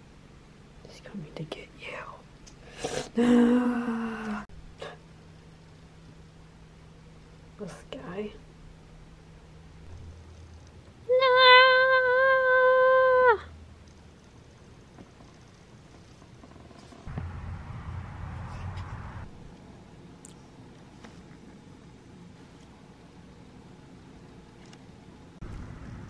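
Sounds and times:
low rumbling background noise: 0.0 - 26.0.

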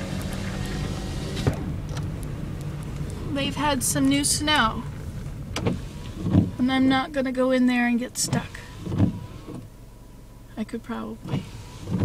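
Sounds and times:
car engine and tyre hum: 0.0 - 12.0.

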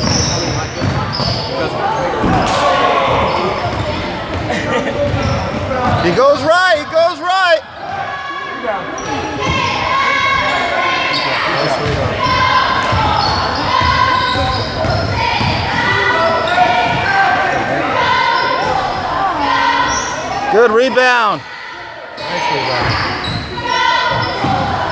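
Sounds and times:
sneakers squeaking on hardwood: 0.0 - 6.2, 9.0 - 17.4, 22.1 - 24.9
voices echoing in hall: 0.0 - 24.9
basketball bouncing: 11.8 - 16.0.

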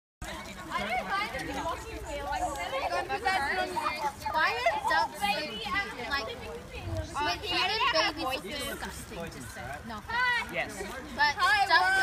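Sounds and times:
people talking indistinctly: 0.2 - 12.0.

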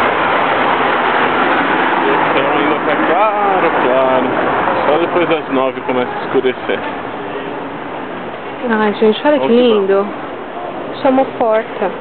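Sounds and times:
car driving past: 0.0 - 12.0.

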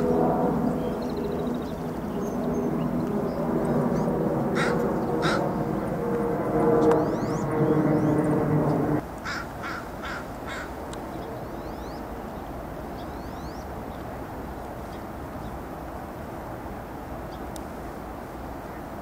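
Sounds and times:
steady low hum: 0.0 - 10.0
bird calling: 3.7 - 5.8, 9.2 - 12.0.

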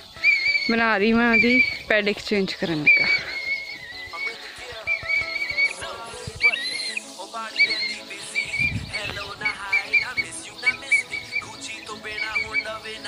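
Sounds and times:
background music: 0.0 - 13.0
person whistling calls: 0.2 - 1.8, 2.8 - 12.9.

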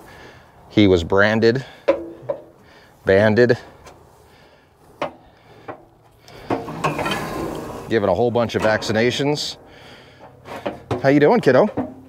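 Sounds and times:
metallic scraping rattle: 6.3 - 9.6.

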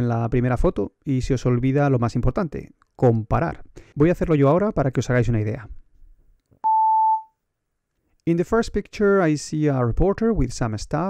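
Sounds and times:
electronic beep: 6.6 - 7.3.

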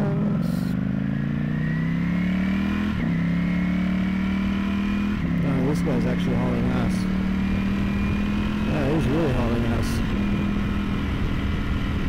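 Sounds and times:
motorcycle engine accelerating: 0.0 - 12.0.

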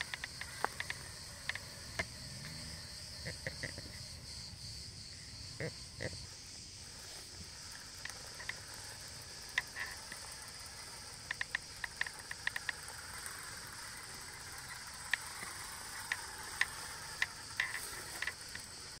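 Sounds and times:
light clicks and ticks: 0.0 - 2.6, 7.9 - 18.7
crickets chirring: 0.0 - 19.0.

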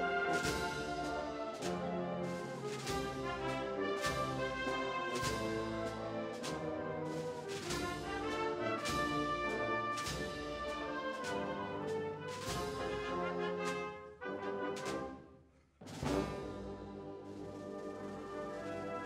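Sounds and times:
wind band playing a march: 0.0 - 19.0
percussion strokes: 0.3 - 14.0.

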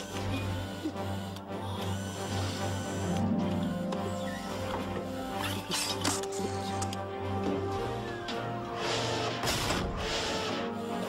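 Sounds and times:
film music with held notes: 0.0 - 11.0.

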